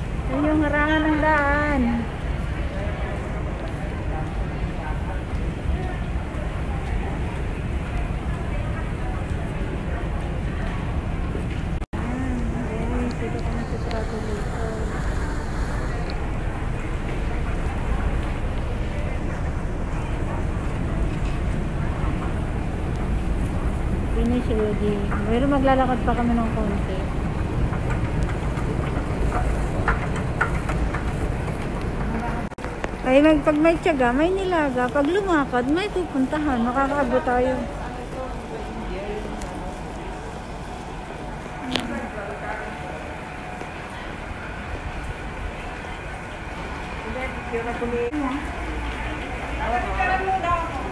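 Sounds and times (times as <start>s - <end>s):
low rumble and hiss of passageway: 0.0s - 50.9s.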